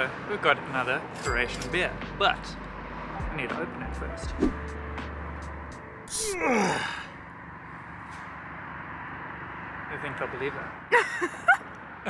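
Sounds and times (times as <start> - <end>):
low outdoor background noise: 4.7 - 12.0.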